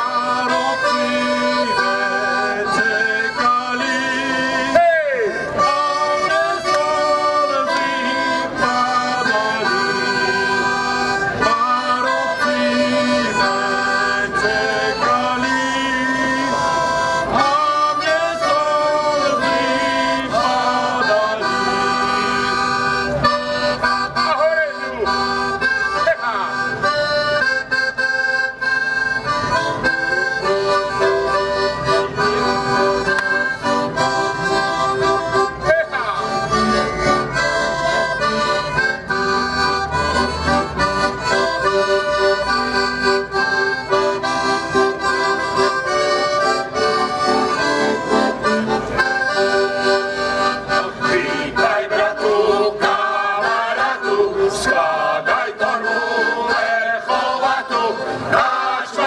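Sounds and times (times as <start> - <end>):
accordion playing held chords: 0.0 - 59.0
group of male voices singing: 5.6 - 10.0, 11.4 - 22.4, 51.0 - 59.0.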